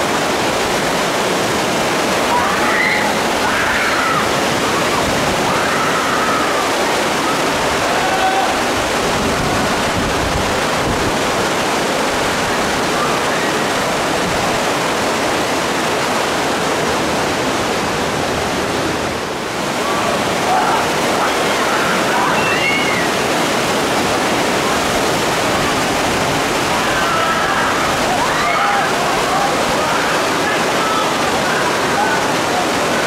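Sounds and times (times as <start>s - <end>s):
whitewater rapids rushing: 0.0s - 33.0s.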